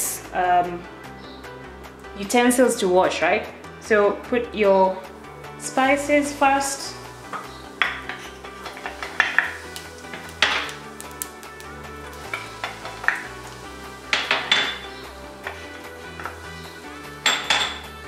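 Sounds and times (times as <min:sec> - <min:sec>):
background music: 0:00.0 - 0:18.0
metal clinks on cooking pot: 0:17.3 - 0:17.9.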